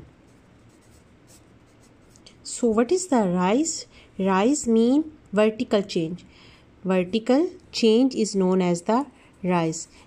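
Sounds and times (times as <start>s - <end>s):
pencil scratching on paper: 0.3s - 2.2s.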